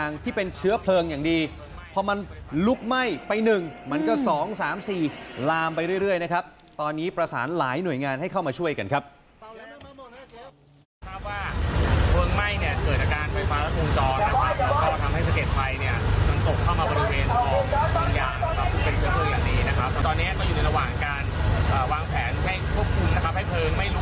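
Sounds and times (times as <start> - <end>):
man speaking: 0.0 - 24.0
fire truck engine running: 11.1 - 24.0.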